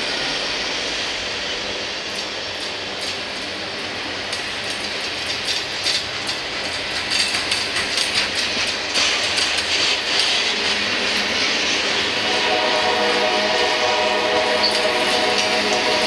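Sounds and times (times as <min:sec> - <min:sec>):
steel wheels rushing on rail: 0:00.0 - 0:16.0
clacks over rail joints: 0:02.1 - 0:12.1.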